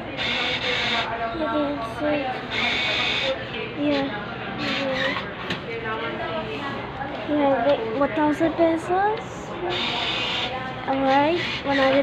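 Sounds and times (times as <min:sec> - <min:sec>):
bill acceptor whirring: 0:00.1 - 0:01.1, 0:02.5 - 0:04.0, 0:09.6 - 0:12.0.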